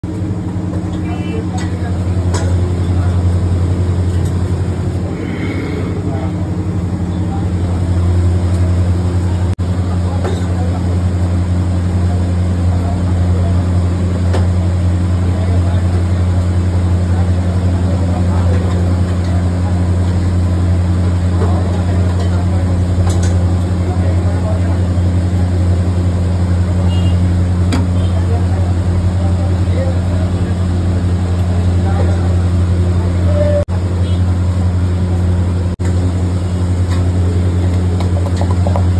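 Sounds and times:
loud low machine hum: 0.0 - 38.9.

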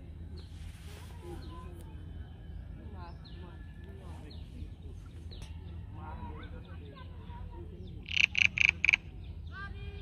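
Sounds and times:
low steady hum: 0.0 - 10.0
animal calling loud notes: 8.0 - 9.1.

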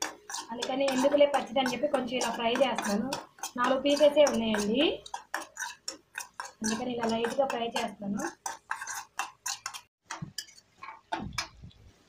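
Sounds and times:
metal spoon knocking on pan: 0.0 - 11.6.

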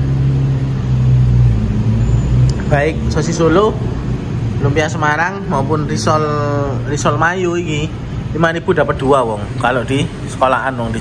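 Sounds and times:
low engine-like hum: 0.0 - 11.0.

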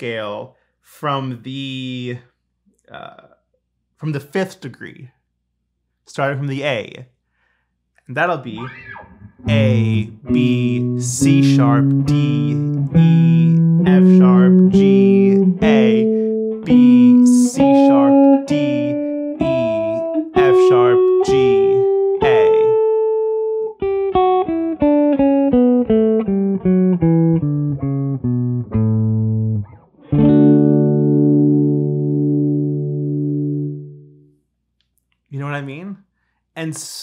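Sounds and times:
electric guitar playing a scale: 8.5 - 34.2.

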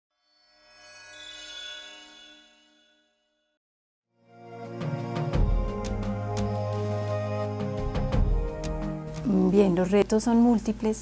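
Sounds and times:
bell-like chime: 0.2 - 3.5.

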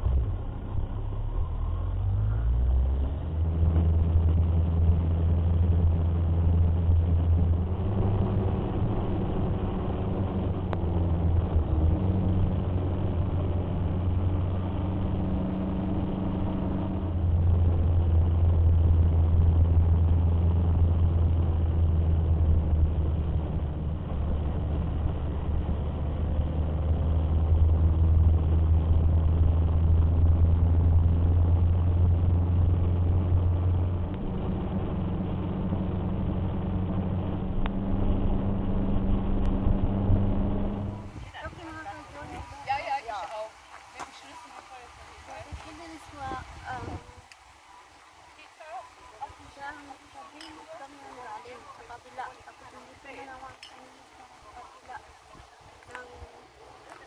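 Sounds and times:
motorcycle engine rumble: 0.0 - 57.0.

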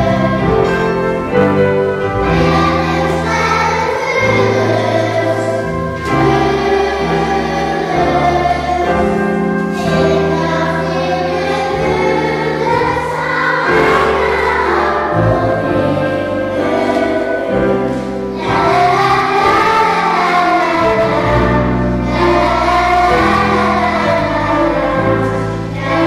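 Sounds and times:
children's choir singing: 0.0 - 26.0
instrumental accompaniment low notes: 0.0 - 26.0.

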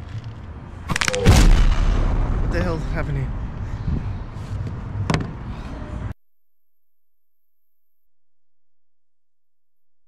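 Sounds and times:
wind rumbling on microphone: 1.6 - 5.9
camera knock: 5.1 - 5.3.

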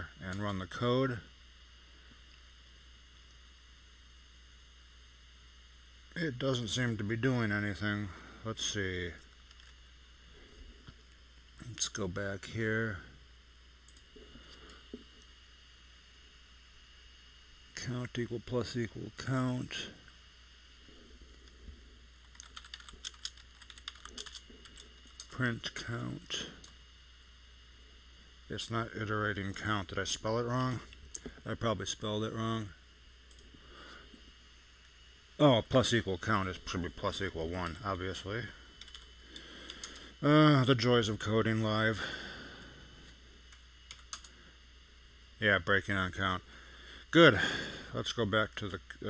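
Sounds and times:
faint keyboard typing: 22.2 - 25.3, 38.8 - 40.0, 43.5 - 44.3.

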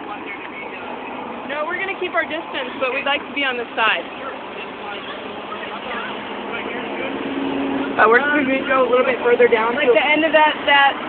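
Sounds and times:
faint indistinct voices: 0.0 - 11.0
street noise haze: 0.0 - 11.0.

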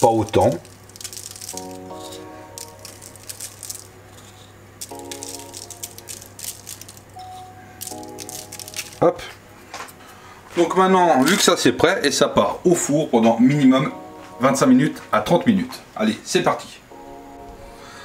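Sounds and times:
sugar grains ticking on pastry: 0.0 - 4.0, 4.8 - 9.1
steady low hum: 0.0 - 11.1
soft background music chords: 0.0 - 18.0.

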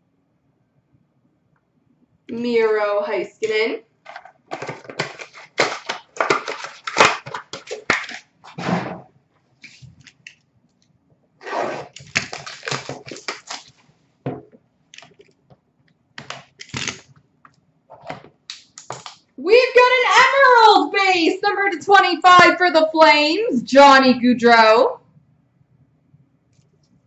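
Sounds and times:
plastic wrapping crackling: 4.1 - 8.6, 11.6 - 13.9, 16.2 - 17.2.

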